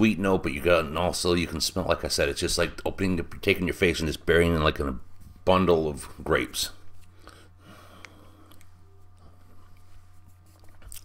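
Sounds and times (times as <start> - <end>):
low steady hum: 0.0 - 11.0
man's mouth sounds tasting: 10.6 - 11.0.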